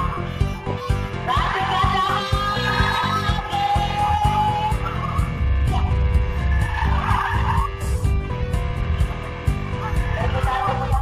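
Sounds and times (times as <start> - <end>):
background music: 0.0 - 11.0
tyres squealing on asphalt: 6.3 - 8.1.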